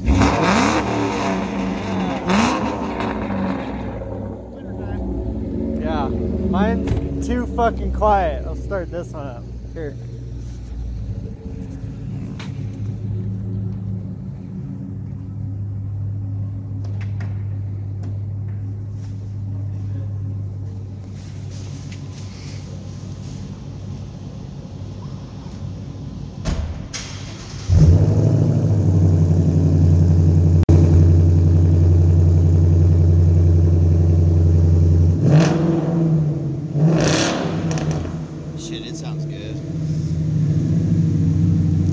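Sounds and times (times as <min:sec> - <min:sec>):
engine revving: 0:00.0 - 0:14.5, 0:27.4 - 0:41.9
car engine starting: 0:00.0 - 0:19.6, 0:20.2 - 0:41.9
loud car engine idling: 0:00.0 - 0:26.3, 0:27.0 - 0:35.7, 0:37.4 - 0:41.9
quieter car engine idling: 0:00.8 - 0:35.2, 0:37.4 - 0:41.9.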